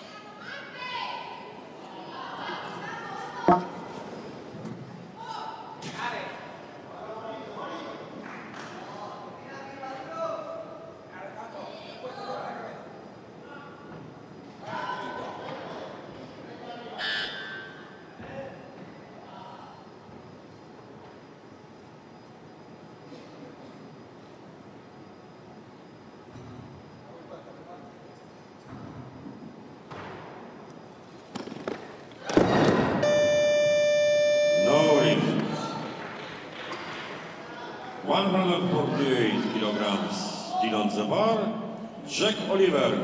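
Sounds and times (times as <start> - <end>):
loud burst of crowd noise: 31.3 - 33.2
electronic buzzer tone: 33.0 - 35.5.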